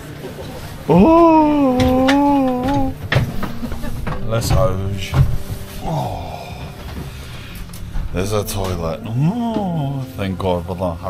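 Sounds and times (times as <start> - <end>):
man exclaiming ohhh: 0.9 - 2.9.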